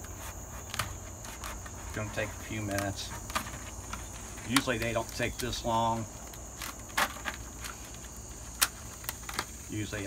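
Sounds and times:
dry gourd skin cracking: 0.0s - 9.7s.

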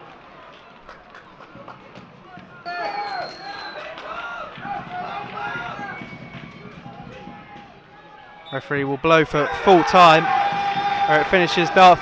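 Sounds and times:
football ground ambience: 0.0s - 12.0s
loud shouts from voices: 2.6s - 6.2s, 9.3s - 12.0s.

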